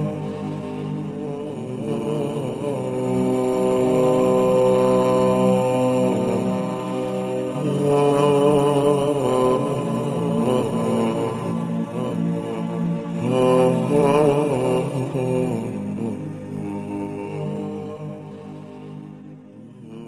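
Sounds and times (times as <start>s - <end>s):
person chanting melodically: 0.0s - 20.0s.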